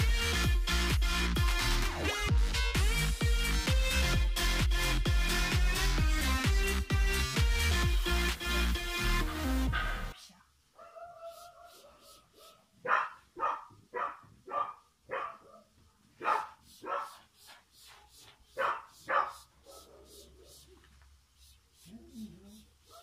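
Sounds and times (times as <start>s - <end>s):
background music: 0.0s - 10.2s
dog barking: 9.7s - 10.1s, 10.8s - 17.3s, 18.6s - 20.6s.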